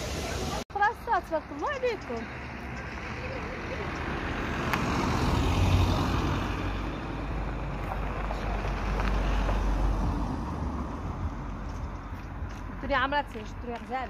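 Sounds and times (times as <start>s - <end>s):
car road noise: 0.0s - 14.0s.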